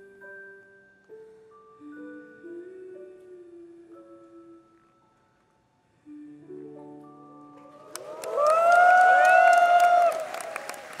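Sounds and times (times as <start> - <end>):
audience clapping: 7.7 - 11.0
audience cheering: 7.8 - 11.0.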